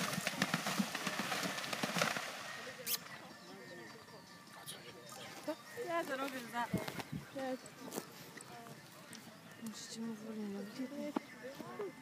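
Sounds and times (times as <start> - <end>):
horse hooves splashing through water: 0.0 - 2.9.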